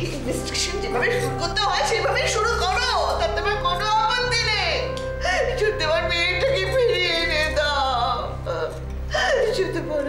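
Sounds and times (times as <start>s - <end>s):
sustained background music: 0.0s - 10.0s.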